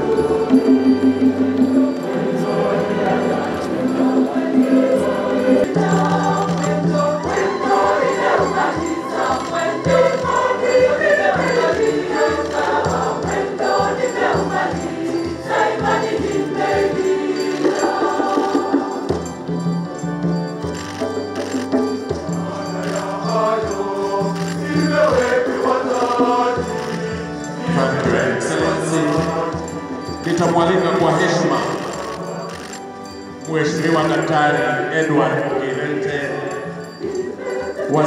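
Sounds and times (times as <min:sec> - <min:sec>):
choir singing held notes: 0:00.0 - 0:38.0.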